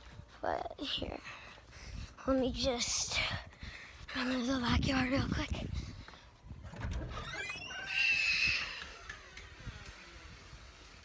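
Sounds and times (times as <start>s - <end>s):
door squealing open: 6.7s - 10.7s.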